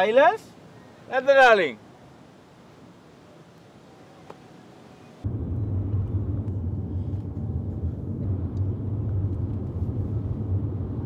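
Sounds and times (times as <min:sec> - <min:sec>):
car interior driving rumble: 0:05.2 - 0:11.0.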